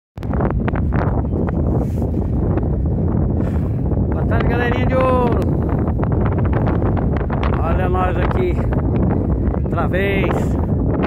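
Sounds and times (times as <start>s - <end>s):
wind buffeting microphone: 0.2s - 11.0s.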